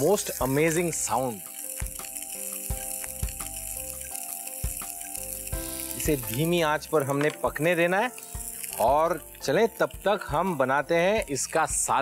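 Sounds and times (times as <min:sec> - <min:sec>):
background music with soft beats: 0:00.0 - 0:12.0
seafood sizzling in a pan: 0:00.0 - 0:12.0.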